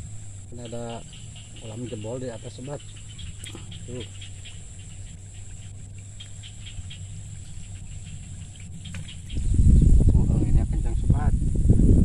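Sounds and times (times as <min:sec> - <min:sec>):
insects chirping: 0:00.0 - 0:12.0
steady low hum: 0:00.0 - 0:12.0.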